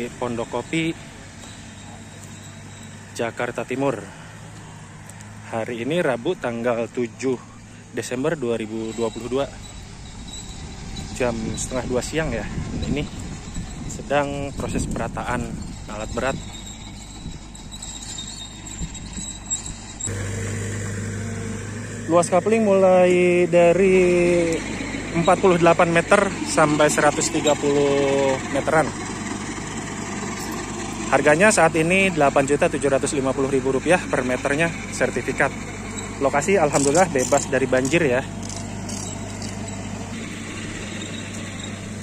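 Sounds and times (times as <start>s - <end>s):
excavator diesel engine droning: 0.0s - 42.0s
steady low hum: 15.3s - 24.2s.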